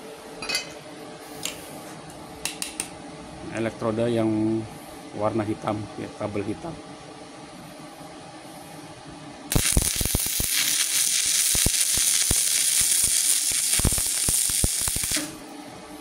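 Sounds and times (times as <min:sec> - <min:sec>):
welding arc hissing and crackling: 0:09.5 - 0:15.5.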